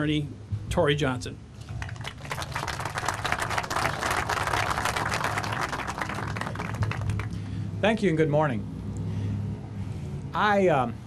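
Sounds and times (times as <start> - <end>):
crowd applause: 1.7 - 7.6.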